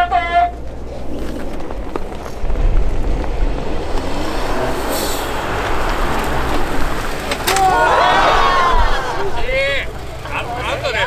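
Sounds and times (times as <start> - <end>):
car engine rumbling: 0.0 - 11.0.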